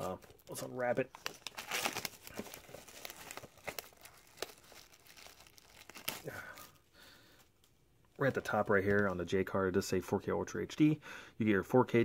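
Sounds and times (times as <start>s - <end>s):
plastic shrink-wrap tearing: 0.0s - 6.8s.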